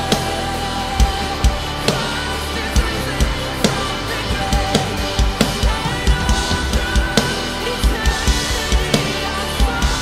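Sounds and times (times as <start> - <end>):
drum kit playing: 0.0 - 10.0
instrumental backing track: 0.0 - 10.0.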